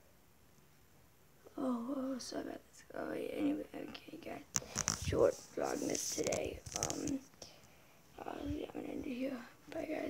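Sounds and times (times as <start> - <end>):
boy talking: 1.5 - 7.3, 8.2 - 10.0.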